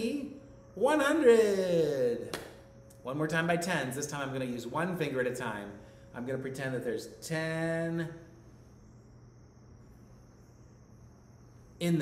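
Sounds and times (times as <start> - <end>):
faint high-pitched tone: 0.0 - 12.0
faint low hum: 0.0 - 12.0.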